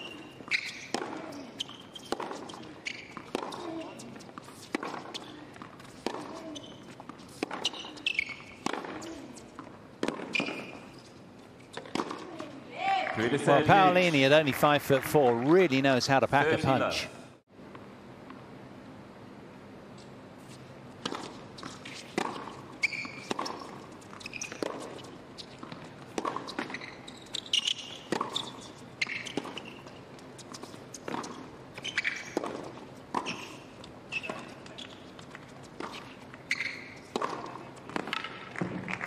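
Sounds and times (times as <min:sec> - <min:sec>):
tennis ball struck by racquets: 0:00.0 - 0:10.8, 0:11.8 - 0:12.5, 0:35.8 - 0:39.0
tennis ball bouncing on court: 0:00.0 - 0:11.0, 0:11.6 - 0:13.2, 0:21.0 - 0:39.0
tennis shoes squeaking on court: 0:00.0 - 0:12.6, 0:19.9 - 0:38.7.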